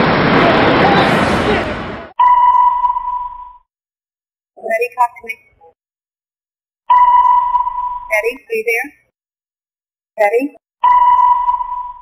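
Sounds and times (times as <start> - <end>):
electronic beep tone ringing: 2.2 - 3.6, 6.9 - 8.2, 10.8 - 12.0.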